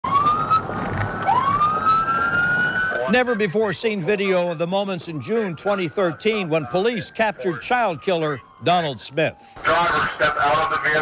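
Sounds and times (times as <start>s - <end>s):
police siren wailing: 0.0s - 11.0s
road noise: 0.0s - 11.0s.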